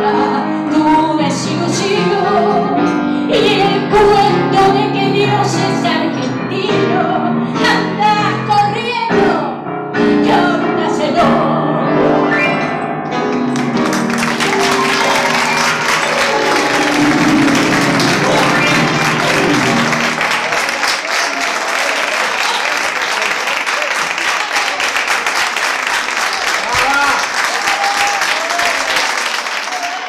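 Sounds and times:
tango music: 0.0 - 21.1
audience applauding: 13.3 - 30.0.

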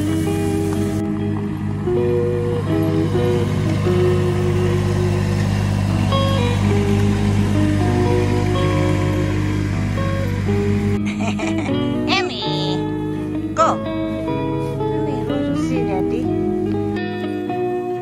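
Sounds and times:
tractor engine running: 0.0 - 11.7
slow background music: 0.0 - 18.0.

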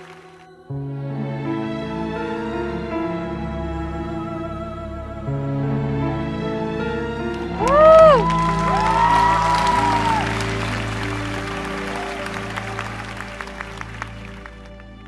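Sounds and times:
audience applause: 0.0 - 0.5, 7.3 - 15.0
slow ballad: 0.0 - 15.0
audience cheering: 7.4 - 14.9.

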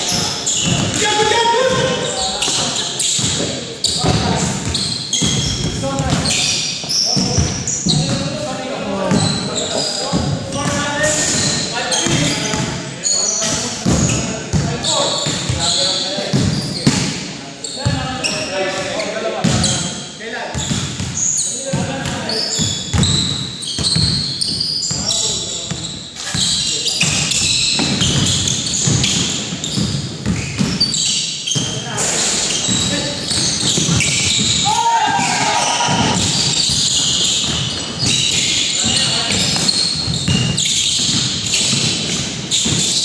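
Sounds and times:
players' voices: 0.0 - 43.0
sneakers squeaking on floor: 0.0 - 43.0
basketball bouncing on wooden floor: 0.1 - 2.6, 3.2 - 6.5, 7.1 - 8.4, 9.1 - 9.4, 13.4 - 15.7, 16.3 - 17.2, 20.5 - 31.8, 32.5 - 43.0.

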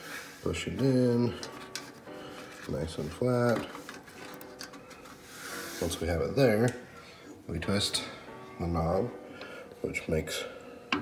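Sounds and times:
rubbing hiss: 5.2 - 6.0.

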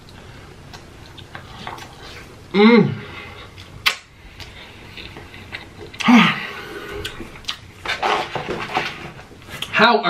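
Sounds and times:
chewing food: 6.9 - 8.2.

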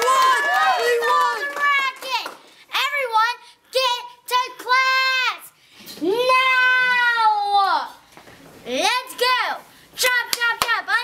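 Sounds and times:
hand claps: 0.0 - 2.6, 10.0 - 10.8
girl exclaiming: 3.8 - 8.0.

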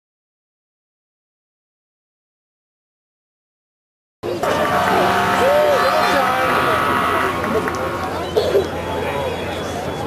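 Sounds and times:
spectators' voices: 4.2 - 10.0
warning siren steady tone: 4.4 - 8.2.

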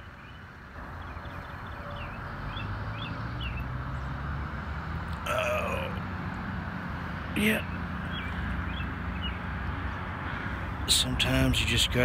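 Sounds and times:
person grunting: 5.2 - 6.0.

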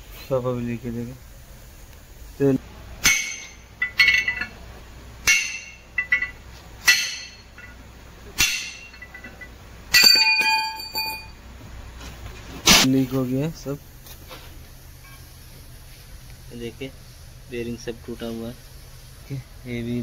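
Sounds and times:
metal clinking on concrete floor: 3.1 - 4.6, 5.3 - 7.8, 8.4 - 11.4.

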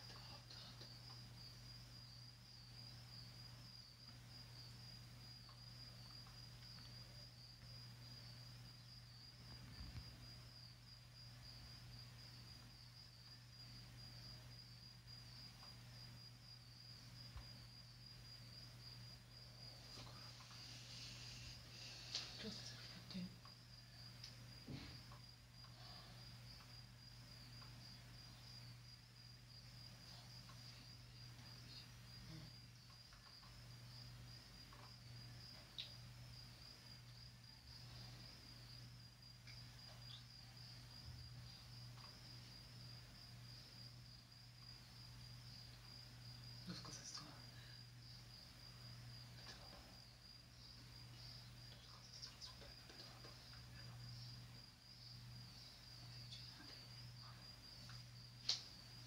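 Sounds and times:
faint high pulsing whine: 0.0 - 59.0
low steady hum: 0.0 - 59.0.

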